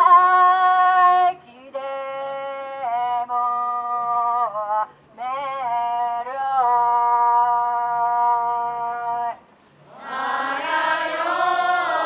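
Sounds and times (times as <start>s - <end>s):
group of voices singing: 9.9s - 12.0s.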